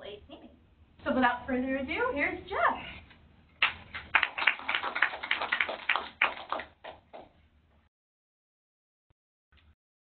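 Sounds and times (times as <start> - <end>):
audience applauding: 3.6 - 7.3.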